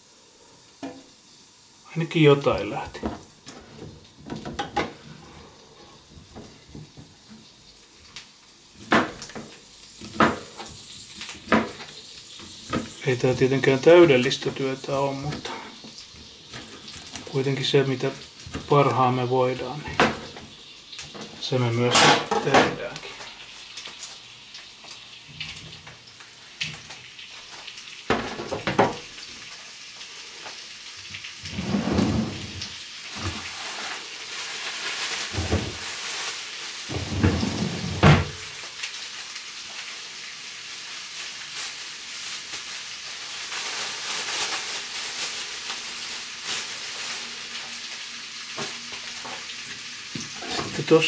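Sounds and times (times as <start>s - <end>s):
potatoes sizzling in a pan: 0.0s - 51.0s
kitchen utensils clattering: 4.3s - 5.1s, 21.1s - 22.9s, 31.5s - 33.9s, 36.9s - 38.5s, 50.3s - 50.8s.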